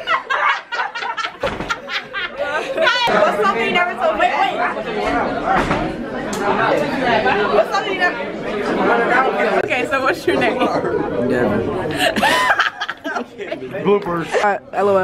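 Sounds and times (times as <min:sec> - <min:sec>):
overlapping chatter of voices: 0:00.0 - 0:15.0.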